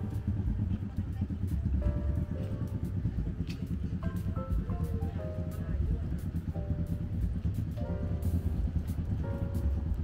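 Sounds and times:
background music: 0.0s - 10.0s
motorcycle engine rumble: 0.0s - 10.0s
voices: 0.0s - 10.0s.

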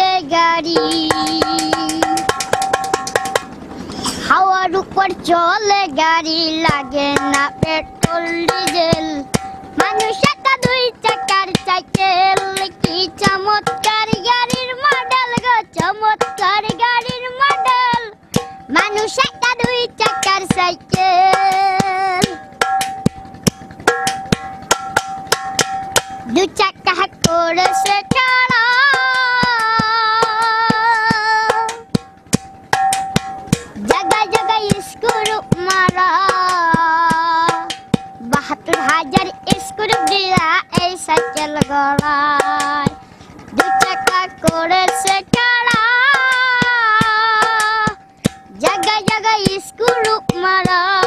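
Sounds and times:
child singing a held note: 0.0s - 2.2s
boy singing: 0.0s - 2.4s, 3.9s - 22.5s, 26.2s - 31.9s, 33.7s - 51.0s
hand striking metal pot: 0.6s - 3.6s, 6.2s - 51.0s.

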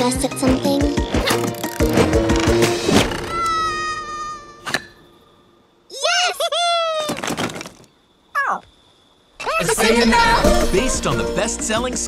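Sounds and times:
wooden sticks clattering: 7.1s - 7.9s.

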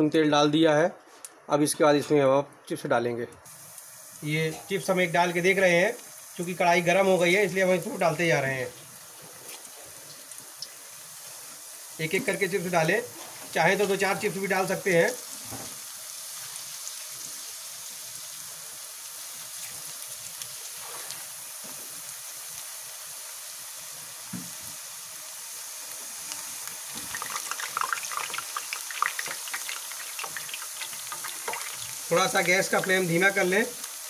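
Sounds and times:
potato slices sizzling in hot oil: 3.5s - 34.0s.

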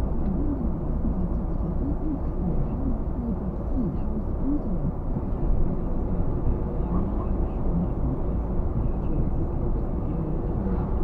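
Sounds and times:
car driving at road speed: 0.0s - 11.0s.

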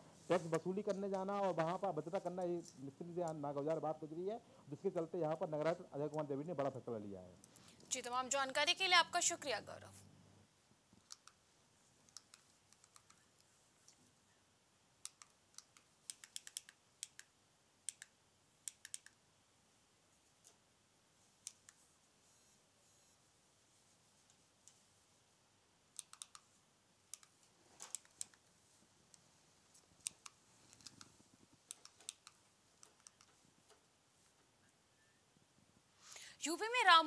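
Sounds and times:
faint sharp irregular clicks: 7.4s - 8.0s, 11.0s - 14.1s, 15.0s - 19.3s, 20.2s - 20.7s, 21.3s - 22.0s, 24.2s - 24.9s, 25.9s - 34.8s
faint sharp clicks: 15.0s - 17.3s, 17.9s - 19.2s.

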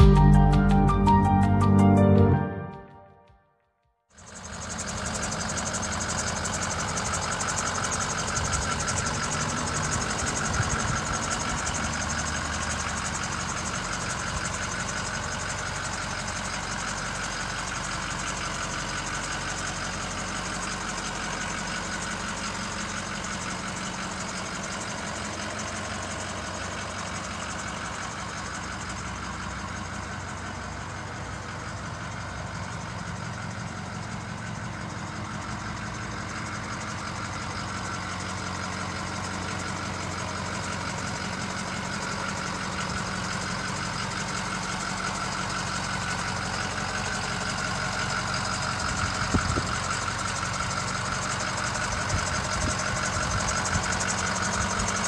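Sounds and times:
diesel engine idling: 0.0s - 2.6s, 4.2s - 55.0s.

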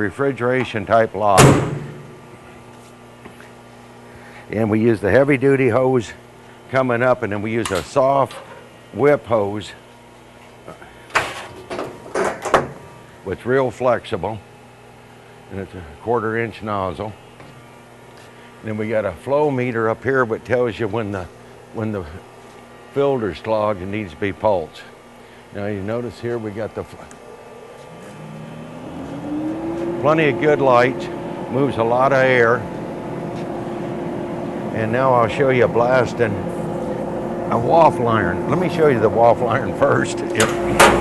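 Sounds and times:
blower motor spinning up: 26.9s - 41.0s.

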